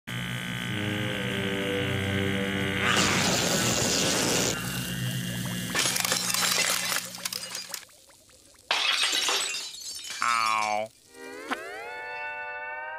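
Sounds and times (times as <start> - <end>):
music: 0.6 - 3.3
electric zap: 2.8 - 7.8.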